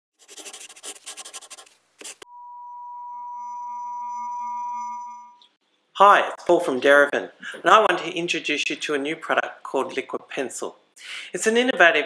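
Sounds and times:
steady electronic tone: 2.2s - 5.6s.

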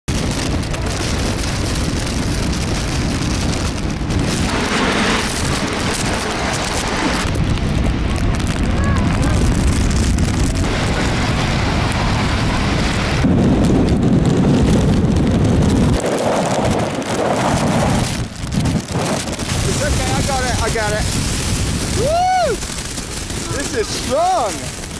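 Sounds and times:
rain: 0.0s - 24.9s
strong wind buffeting microphone: 0.0s - 24.9s.

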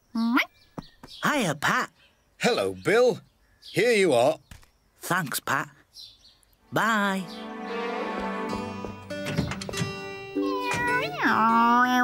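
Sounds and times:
light background music: 6.7s - 11.6s
cartoon cat meowing: 10.4s - 11.7s.

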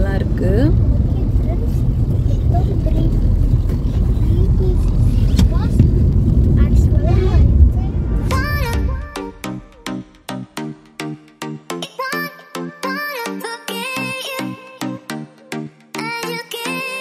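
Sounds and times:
road and engine rumble in car: 0.0s - 9.1s.

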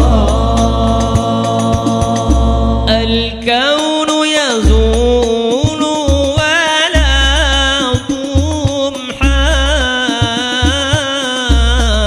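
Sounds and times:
group chanting long notes: 0.0s - 3.4s
bass drum strikes: 0.0s - 3.5s, 4.6s - 12.0s
solo voice singing ornamented line: 0.0s - 12.0s.

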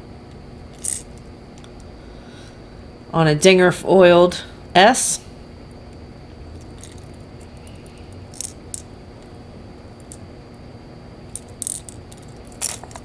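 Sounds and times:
faint room hum: 0.0s - 13.0s
plastic lures clicking and rattling: 8.3s - 8.9s.

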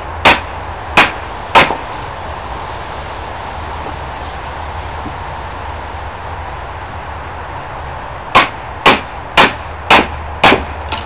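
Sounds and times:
hammer striking metal hatchet: 1.0s - 1.8s, 8.4s - 11.0s.

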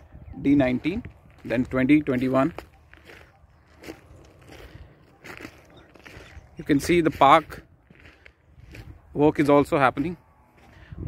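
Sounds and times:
footsteps crunching on gravel: 0.5s - 11.0s.

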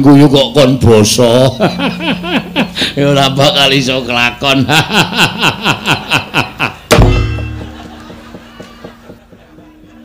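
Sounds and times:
faint ticking and ringing tones: 1.2s - 5.7s
man laughing: 1.4s - 3.0s, 4.6s - 6.9s
loud sharp knock with boom: 6.9s - 7.5s.

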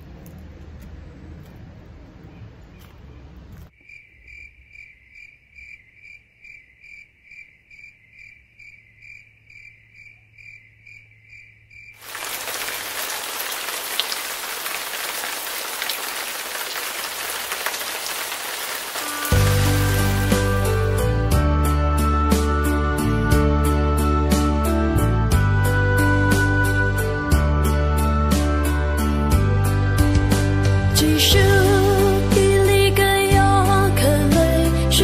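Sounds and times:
rain-like hiss: 12.0s - 21.0s
music: 19.0s - 35.0s.

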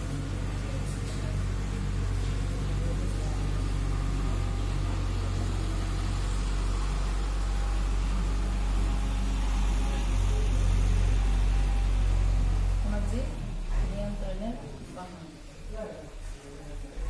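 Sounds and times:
low motor hum: 0.0s - 17.0s.

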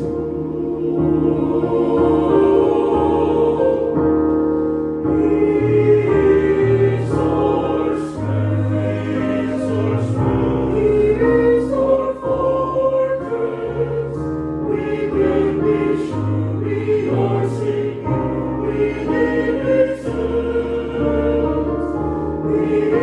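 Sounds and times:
choir singing a slow hymn: 0.0s - 23.0s.

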